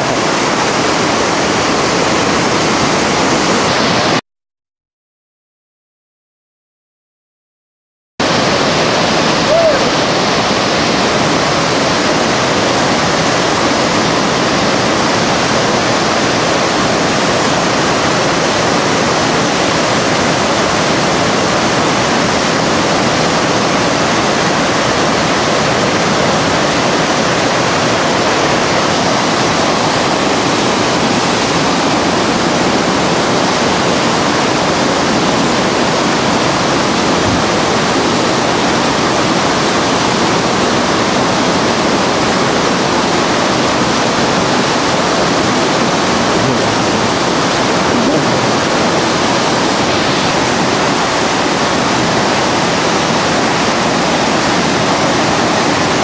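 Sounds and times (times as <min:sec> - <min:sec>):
whitewater rapids rushing: 0:00.0 - 0:04.2, 0:08.2 - 0:56.0.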